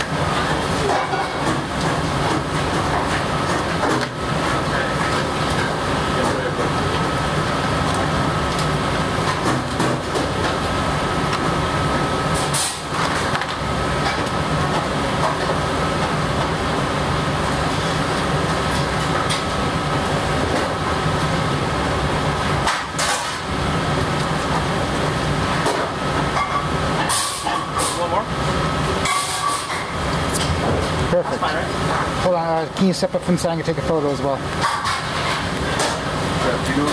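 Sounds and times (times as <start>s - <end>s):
machinery hum with whine: 0.0s - 36.9s.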